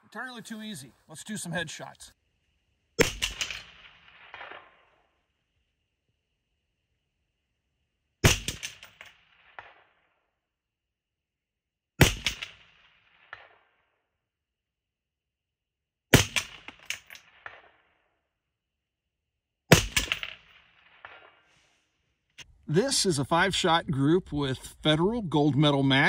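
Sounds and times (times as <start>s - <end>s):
bullet pinging steel target: 3.0s - 4.8s, 8.2s - 9.9s, 12.0s - 12.7s, 19.7s - 21.3s
rifle shots with echo: 3.0s - 5.1s, 8.2s - 10.1s, 12.0s - 13.8s, 16.2s - 18.0s, 19.7s - 21.5s.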